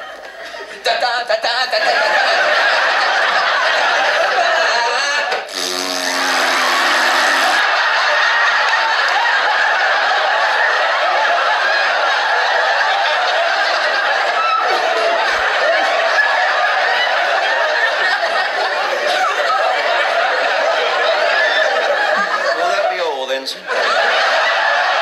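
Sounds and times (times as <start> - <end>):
studio audience laughing: 0.0 - 25.0.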